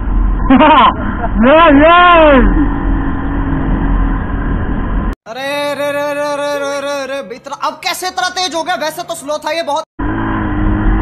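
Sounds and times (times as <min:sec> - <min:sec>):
motorcycle noise: 0:00.0 - 0:05.2, 0:10.0 - 0:11.0
man calling out: 0:01.4 - 0:02.7, 0:05.3 - 0:09.9.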